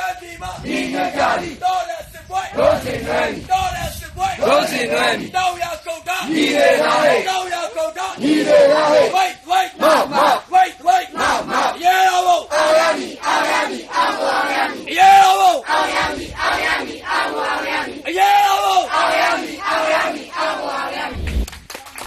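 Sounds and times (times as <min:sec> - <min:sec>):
crowd chanting slogans: 0:00.0 - 0:21.2.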